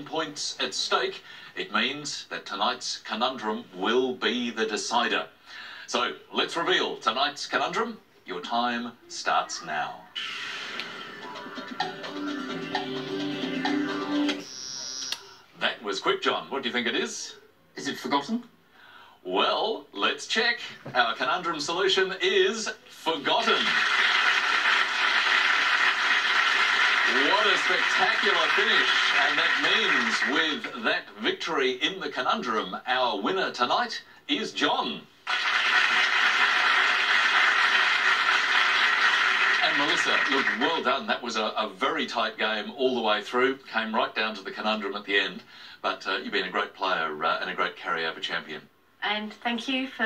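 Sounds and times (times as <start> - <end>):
quiz show timer music on television: 10.2 - 15.6, 23.1 - 31.8, 35.2 - 42.2
contestant buzzer tone: 13.7 - 15.4
studio audience applauding: 23.1 - 30.8, 35.2 - 41.0.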